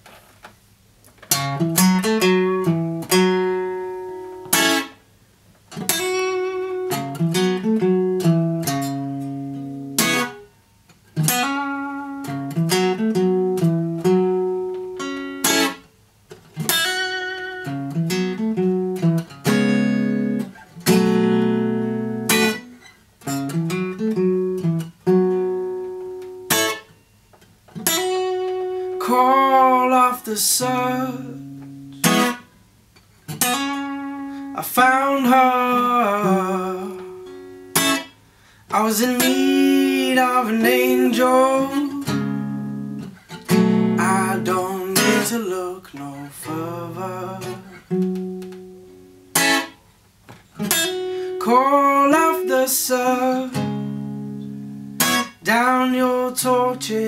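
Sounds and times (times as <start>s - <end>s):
fingerpicked acoustic guitar: 1.0s - 57.0s
person singing: 28.9s - 31.6s, 34.5s - 37.3s, 38.7s - 42.5s, 43.9s - 47.8s, 51.2s - 53.9s, 55.4s - 57.0s.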